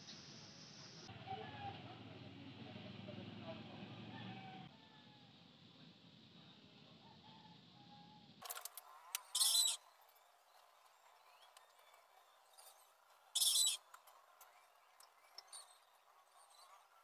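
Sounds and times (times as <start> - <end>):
metal parts clicking when handled: 8.4 - 9.8
high-pitched bird chirps: 9.2 - 9.9, 12.2 - 14.0.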